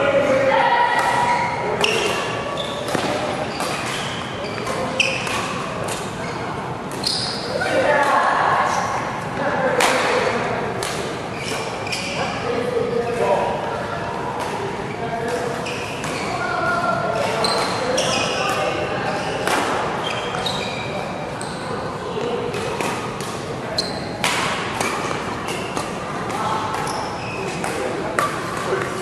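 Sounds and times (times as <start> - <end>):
voices echoing in hall: 0.0 - 29.0
shoes squeaking on court: 1.0 - 7.7, 11.3 - 13.4, 14.8 - 29.0.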